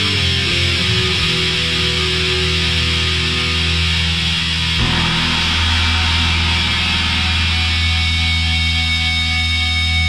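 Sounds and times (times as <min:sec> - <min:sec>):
thrash metal music: 0:00.0 - 0:10.0.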